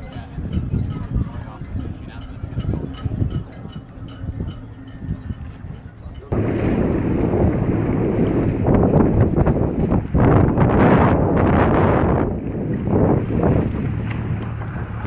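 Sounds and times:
choppy water wash: 0:00.0 - 0:15.0
motorboat engine hum: 0:00.0 - 0:15.0
wind buffeting microphone: 0:00.0 - 0:15.0.

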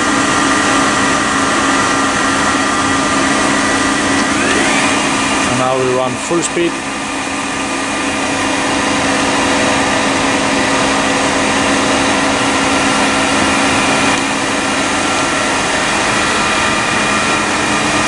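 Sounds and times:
machine spindle whine: 0:00.0 - 0:18.0.

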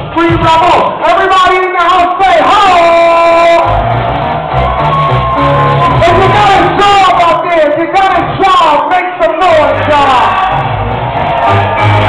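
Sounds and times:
loud hip-hop music: 0:03.4 - 0:08.8, 0:09.4 - 0:12.0.

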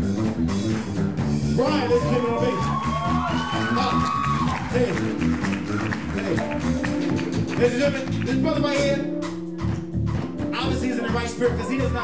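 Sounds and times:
electric guitar: 0:00.0 - 0:10.8
drum kit: 0:00.0 - 0:12.0
electric bass: 0:00.0 - 0:12.0
keyboard: 0:00.0 - 0:12.0.

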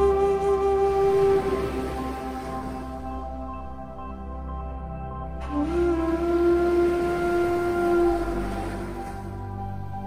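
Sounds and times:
woodwind long note: 0:00.0 - 0:03.1, 0:05.4 - 0:09.6
quiet sustained accompaniment: 0:00.0 - 0:10.0.

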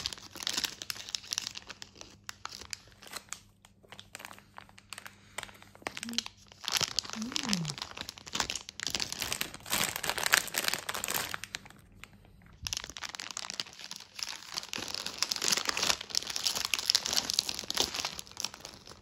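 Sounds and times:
plastic bags crinkling: 0:00.0 - 0:11.9, 0:12.5 - 0:19.0.

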